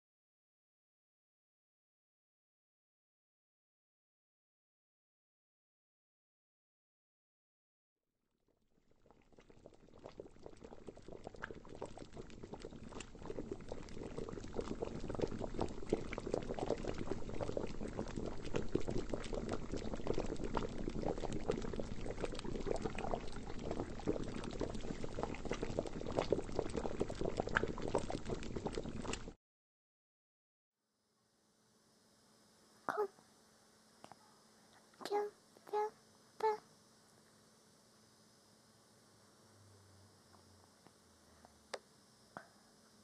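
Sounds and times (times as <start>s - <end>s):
liquid boiling with bubbling pops: 8.7s - 29.4s, 40.3s - 42.5s.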